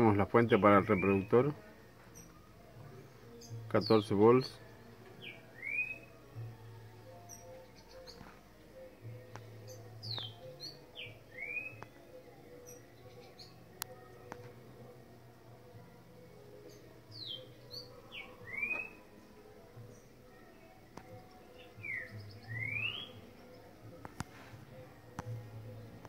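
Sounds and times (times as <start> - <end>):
bird whistling call: 5.2 - 6.1, 11.3 - 11.9, 18.2 - 19.0, 21.8 - 23.2.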